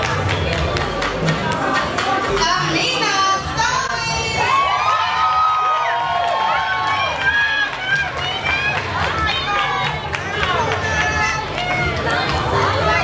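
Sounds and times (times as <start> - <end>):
crowd talking and calling out: 0.0 - 13.0.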